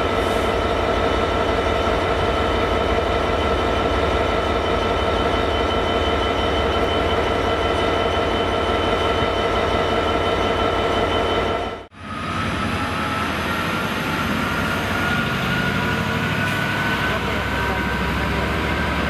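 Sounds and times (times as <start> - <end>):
diesel locomotive rumble and whine: 0.0 - 19.0
train drone with held tones: 0.0 - 19.0.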